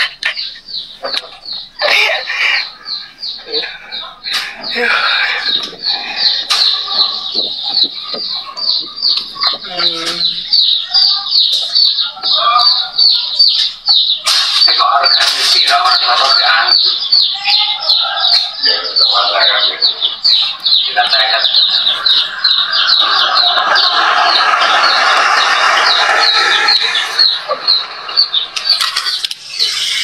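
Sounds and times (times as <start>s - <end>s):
bird chirping: 0.0s - 30.0s
background voices: 1.0s - 30.0s.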